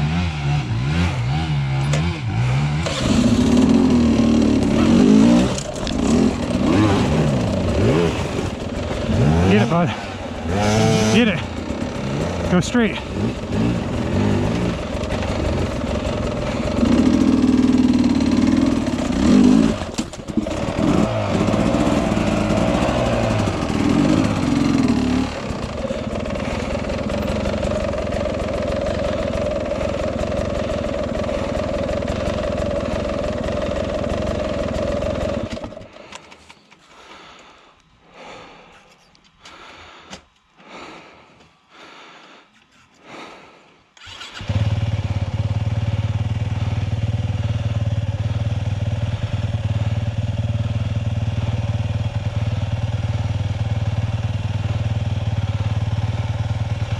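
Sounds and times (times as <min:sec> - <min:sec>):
dirt bike engines revving: 0:00.0 - 0:37.6.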